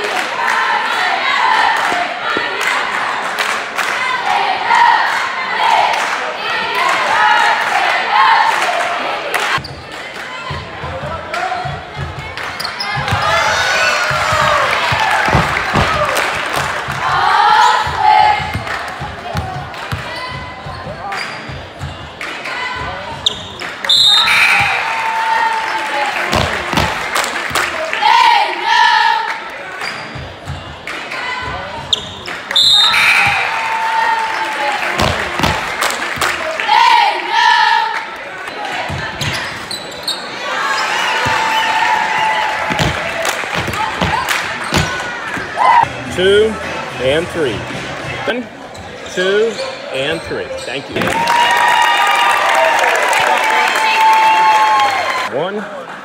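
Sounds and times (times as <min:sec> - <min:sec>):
crowd voices and shouts: 0:00.0 - 0:56.0
basketball bouncing on hardwood: 0:14.1 - 0:16.0, 0:42.7 - 0:45.0.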